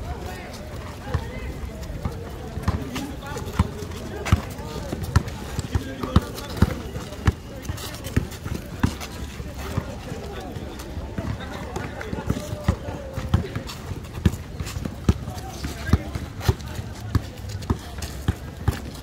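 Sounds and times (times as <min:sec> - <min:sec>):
basketball bouncing on asphalt: 0:01.0 - 0:19.0.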